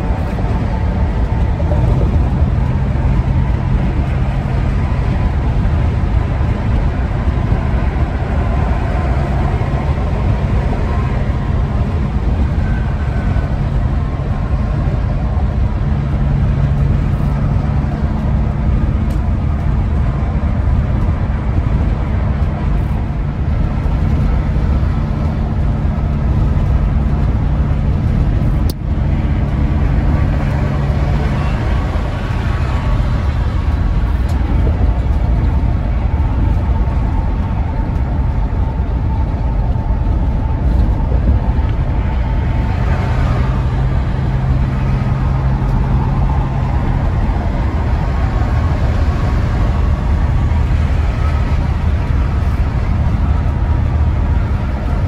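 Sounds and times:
engine drone: 0:00.0 - 0:55.0
tyre and road noise: 0:00.0 - 0:55.0.

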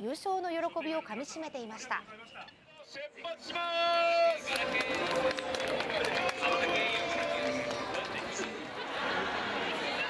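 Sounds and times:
crowd cheering and shouting: 0:03.5 - 0:10.0.

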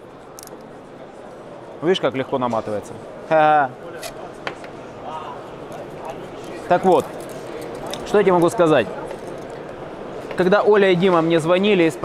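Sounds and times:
hall hubbub: 0:00.0 - 0:12.0.

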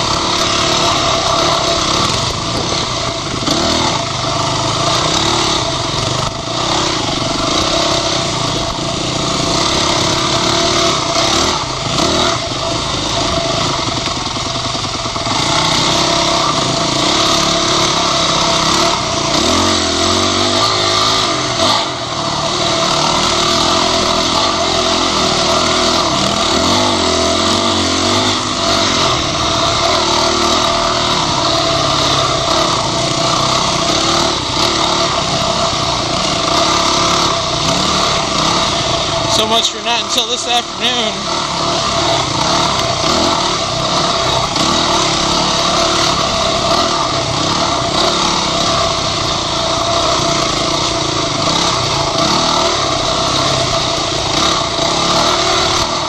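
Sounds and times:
dirt bike engine revving: 0:00.0 - 0:56.0.

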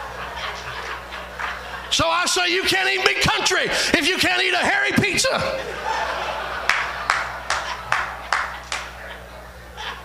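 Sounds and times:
steady low hum: 0:00.0 - 0:10.0
hand claps: 0:06.7 - 0:09.0.

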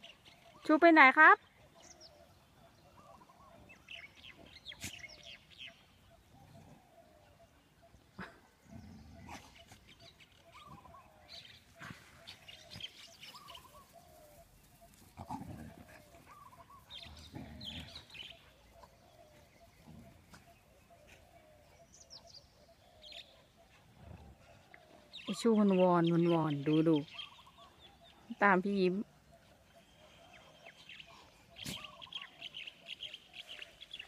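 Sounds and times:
dogs playing on grass: 0:01.7 - 0:34.0
low dog sounds: 0:06.0 - 0:25.2
short bird calls: 0:29.6 - 0:34.0.

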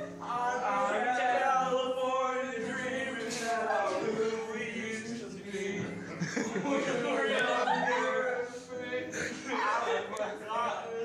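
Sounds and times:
people singing garbled: 0:00.0 - 0:11.0
people chuckling: 0:03.3 - 0:04.8, 0:05.7 - 0:09.8.

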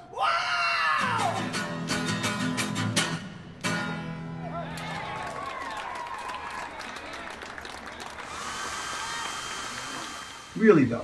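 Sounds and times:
applause: 0:04.6 - 0:10.1
hair dryer running: 0:08.2 - 0:10.7.

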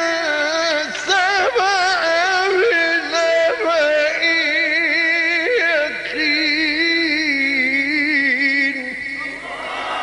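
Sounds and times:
man chanting melodically: 0:00.0 - 0:09.7.

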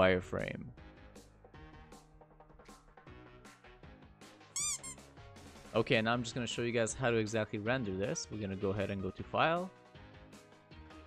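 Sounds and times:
quiet background music with beat: 0:00.0 - 0:11.0
high-pitched squeak effect: 0:04.6 - 0:05.0
short chirp: 0:04.6 - 0:05.0.

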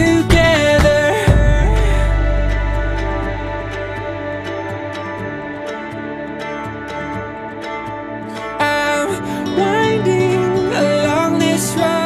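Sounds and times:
drum beat: 0:00.0 - 0:03.5
person singing: 0:00.0 - 0:07.2, 0:08.2 - 0:12.0
held low note: 0:00.0 - 0:08.6.

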